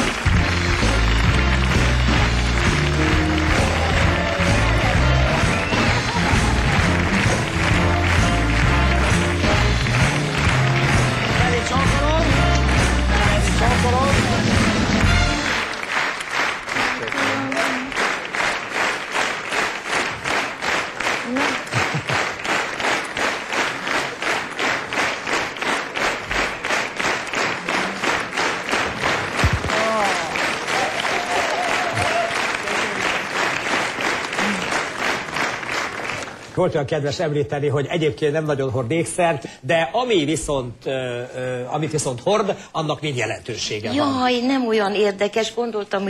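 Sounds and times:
band playing entrance music: 0.0s - 16.1s
audience clapping in rhythm: 0.0s - 39.6s.

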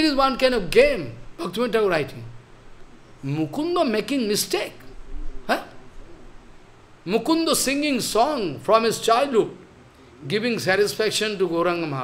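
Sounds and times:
man saying huh: 5.4s - 5.8s.

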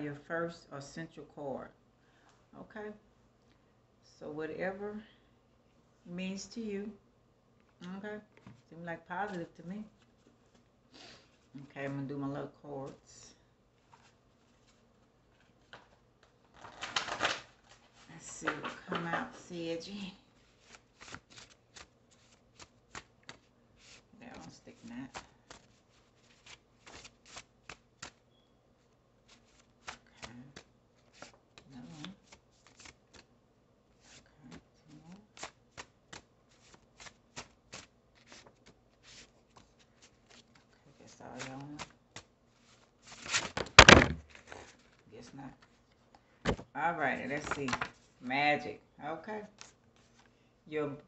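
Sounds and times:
cards being shuffled: 13.8s - 19.5s, 20.4s - 28.3s, 29.2s - 33.3s, 34.0s - 45.0s, 46.5s - 48.1s, 49.5s - 50.3s.

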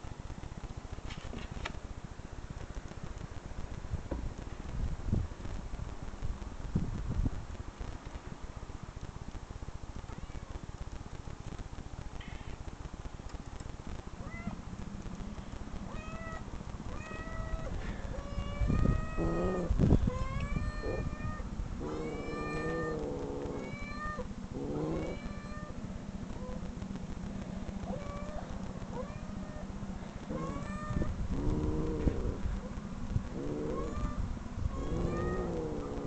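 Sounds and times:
recorded cat meows: 15.9s - 25.8s, 27.9s - 29.7s, 30.3s - 32.7s, 33.4s - 36.0s.

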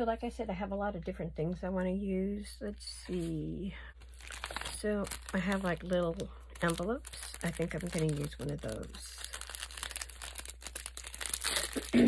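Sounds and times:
plastic packet crinkling: 4.0s - 12.0s.

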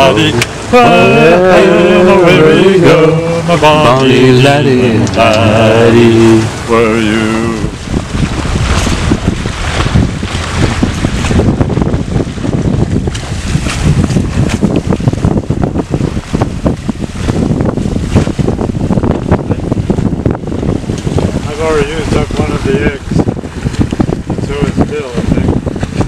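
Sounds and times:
water rushing past boat: 0.0s - 26.0s
wind buffeting microphone: 0.0s - 26.0s.

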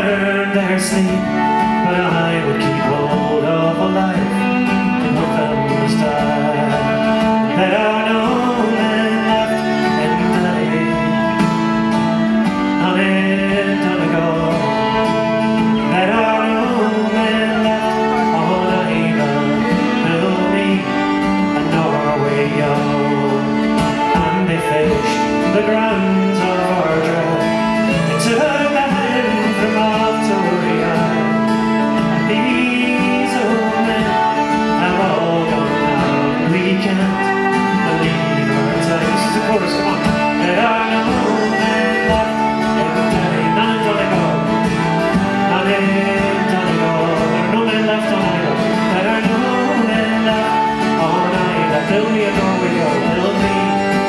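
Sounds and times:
fiddle: 0.0s - 54.0s
strummed acoustic guitar: 0.0s - 54.0s
uilleann pipes: 0.0s - 54.0s.

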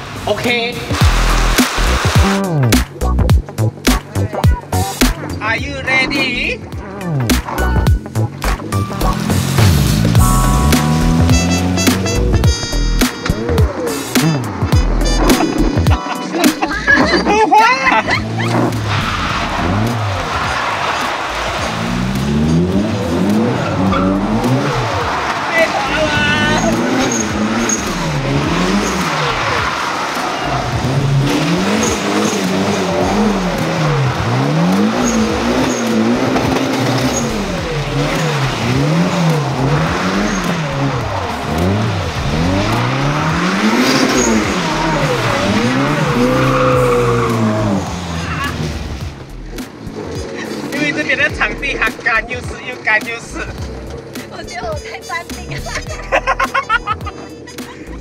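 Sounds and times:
car engine revving: 0.0s - 58.0s
tyres skidding on wet tarmac: 0.0s - 58.0s.

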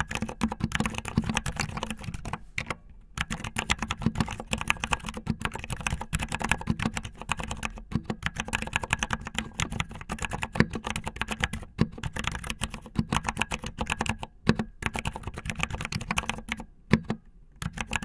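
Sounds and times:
fast typing on mechanical keyboard: 0.0s - 18.0s.

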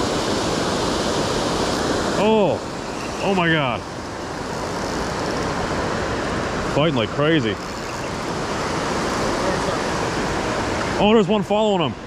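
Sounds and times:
water rushing over spillway: 0.0s - 12.0s.

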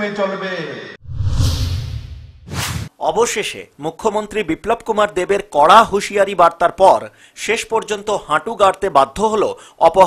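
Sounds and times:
deep whoosh with low rumble: 1.0s - 2.4s
short sharp swish: 1.0s - 2.9s.

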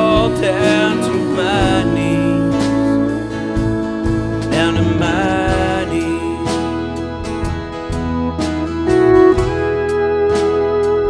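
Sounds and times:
woman singing: 0.0s - 6.5s
live country band: 0.0s - 11.0s
drum strokes: 3.6s - 9.7s.

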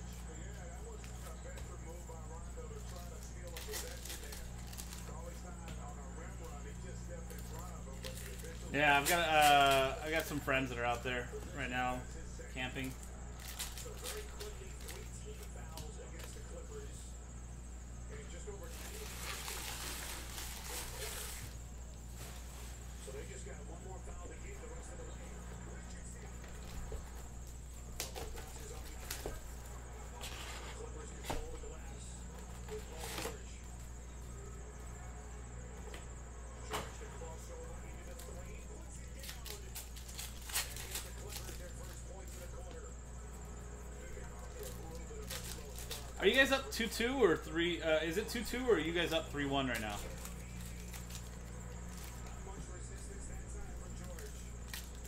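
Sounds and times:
steady low hum: 0.0s - 55.0s
foil pack tearing: 2.6s - 5.5s, 6.2s - 11.0s, 12.4s - 16.6s, 18.4s - 23.6s, 37.9s - 42.7s, 44.1s - 46.8s, 48.1s - 55.0s.

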